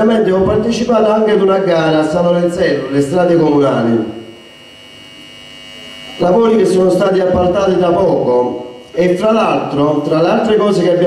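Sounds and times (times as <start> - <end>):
electrical hum: 0.0 - 11.0
high constant whine: 0.0 - 11.0.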